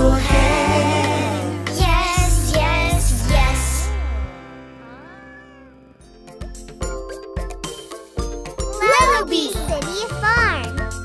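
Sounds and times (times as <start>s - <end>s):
instrumental music with drums: 0.0s - 3.7s, 6.2s - 11.0s
cartoon cat meowing: 4.8s - 6.0s.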